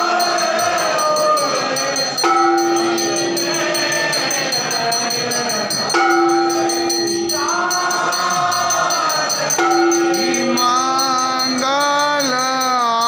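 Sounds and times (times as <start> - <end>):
group of voices singing: 0.0 - 13.0
rapid metallic jingling: 0.0 - 13.0.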